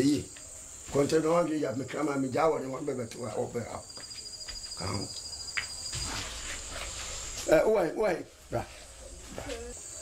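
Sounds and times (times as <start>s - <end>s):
crickets trilling: 0.0s - 10.0s
high insect hiss: 0.0s - 10.0s.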